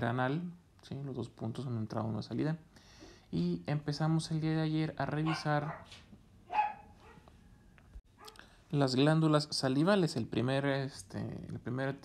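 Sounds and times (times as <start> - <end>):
dog bark: 5.2 - 7.3, 8.2 - 8.5.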